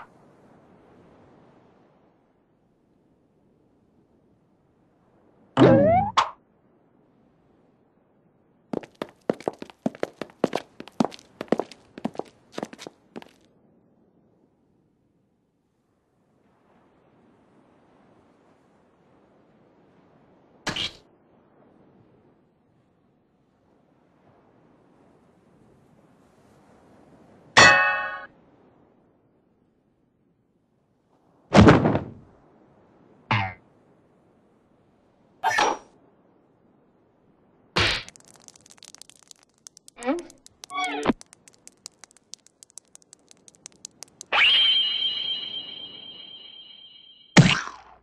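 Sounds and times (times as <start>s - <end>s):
cartoon boing: 5.6s - 6.3s.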